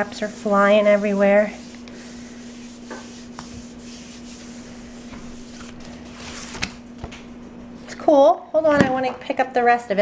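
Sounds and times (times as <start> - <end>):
hands rubbing paper: 0.0 - 6.7.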